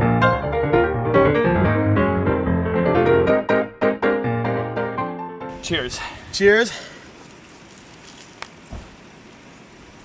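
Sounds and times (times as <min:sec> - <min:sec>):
low steady hiss: 0:05.5 - 0:10.0
soft thump: 0:08.7 - 0:09.0.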